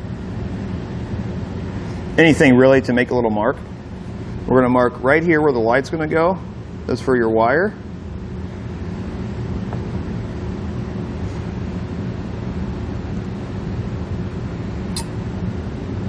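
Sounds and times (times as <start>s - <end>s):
low mechanical hum of machinery: 0.0s - 16.0s.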